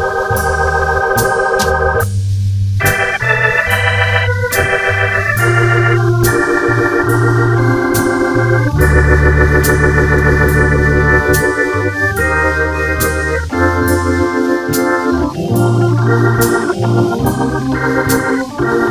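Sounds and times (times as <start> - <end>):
organ playing wavering chords: 0.0 - 2.1, 2.8 - 18.9
drums light steady beat: 0.0 - 18.9
organ bass notes: 0.0 - 18.9.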